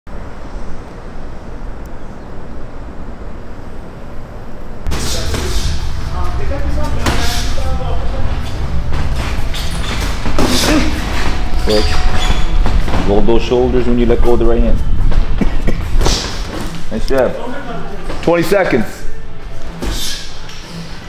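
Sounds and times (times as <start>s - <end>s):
indistinct voices: 4.9s - 14.7s.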